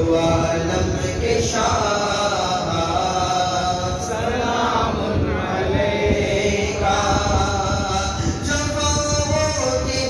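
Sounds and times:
man chanting unaccompanied: 0:00.0 - 0:10.0.

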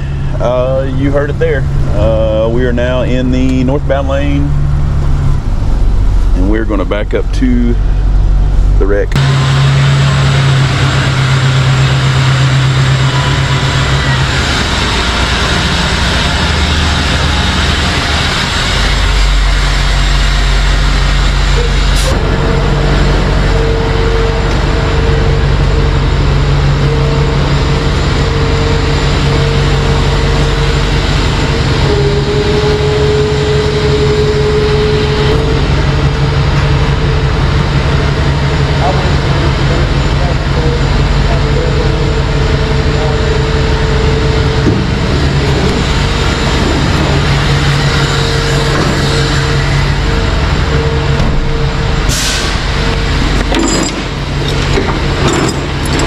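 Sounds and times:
steady whine: 0:00.0 - 0:56.0
truck engine running: 0:00.0 - 0:56.0.

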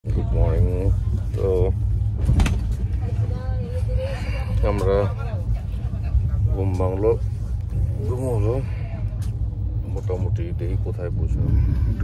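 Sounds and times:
vehicle rumble inside cabin: 0:00.0 - 0:12.0.

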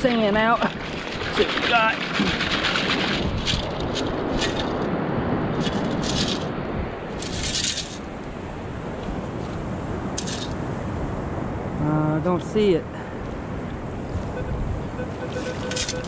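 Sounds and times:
surf washing: 0:00.0 - 0:16.0
shells rattling in metal scoop: 0:10.2 - 0:10.5.

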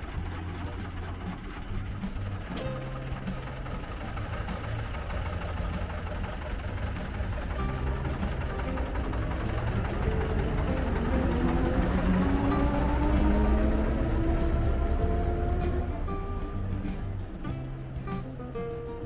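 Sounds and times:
background music: 0:00.0 - 0:19.0
bus engine rumble: 0:00.0 - 0:19.0.

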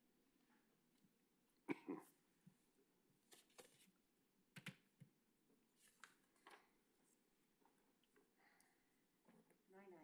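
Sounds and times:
short cough: 0:01.7 - 0:02.2.

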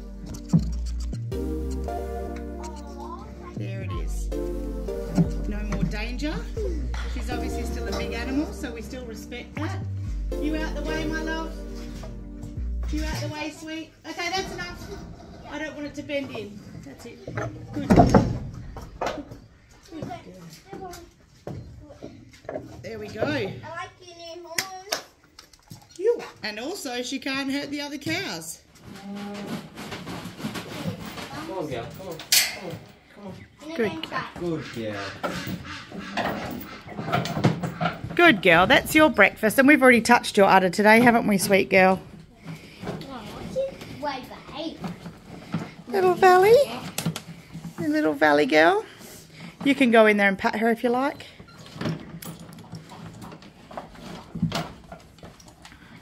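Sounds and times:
indistinct voices talking: 0:00.0 - 0:18.0, 0:32.6 - 0:42.4.

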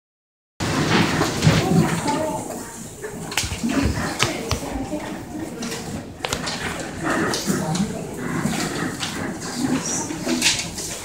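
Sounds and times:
audience voices murmuring: 0:01.2 - 0:11.0.

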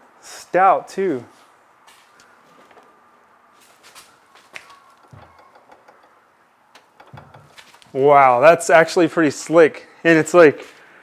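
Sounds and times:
clicks and knocks handling machine: 0:06.8 - 0:07.9.

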